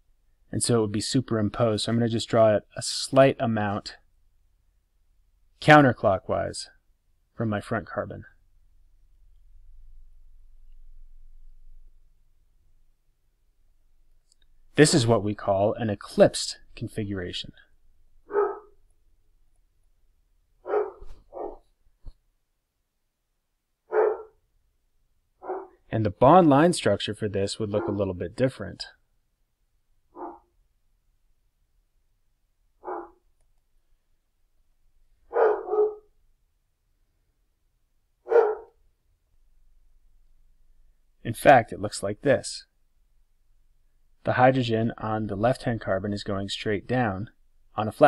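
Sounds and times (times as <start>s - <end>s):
dog barking: 18.3s - 18.8s, 20.6s - 21.6s, 23.9s - 24.4s, 25.4s - 25.8s, 27.8s - 28.0s, 30.2s - 30.5s, 32.8s - 33.2s, 35.3s - 36.1s, 38.2s - 38.8s.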